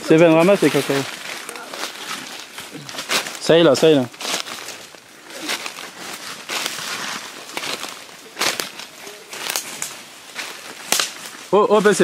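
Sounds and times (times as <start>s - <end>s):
brushing through undergrowth: 0.0s - 12.0s
footsteps crunching dry leaves: 0.0s - 12.0s.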